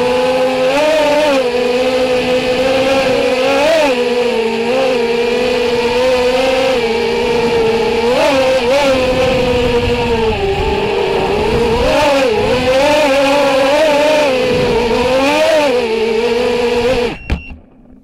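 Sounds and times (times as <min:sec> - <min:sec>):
quadcopter motors whining: 0:00.0 - 0:18.0.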